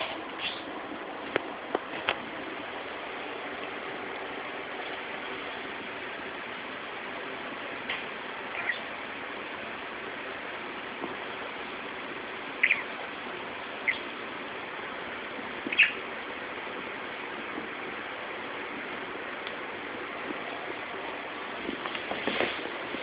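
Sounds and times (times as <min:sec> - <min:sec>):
steady background hiss: 0:00.0 - 0:23.0
budgerigar chirps: 0:08.5 - 0:08.9, 0:12.6 - 0:12.9, 0:13.8 - 0:14.1, 0:15.7 - 0:16.0.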